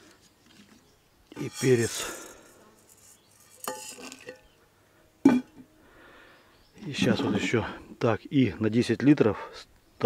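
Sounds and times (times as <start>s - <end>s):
peppercorns rattling into a jar: 1.4s - 4.4s
bowl clinking against glass jar: 3.4s - 4.4s.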